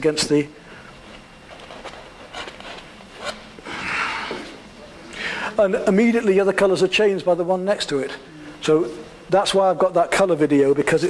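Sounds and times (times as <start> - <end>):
painting knife scraping canvas: 1.5 - 3.5.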